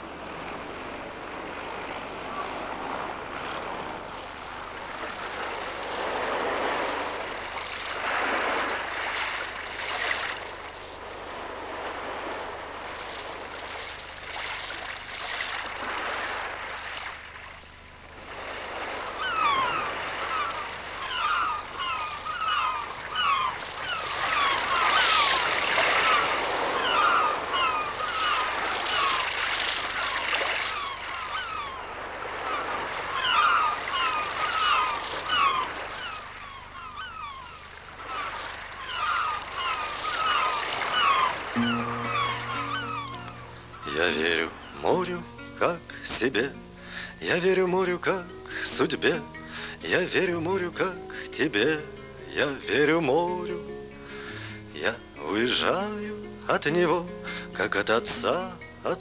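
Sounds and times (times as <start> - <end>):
sea surf washing: 0.0 - 59.0
seabirds calling rapidly: 0.5 - 59.0.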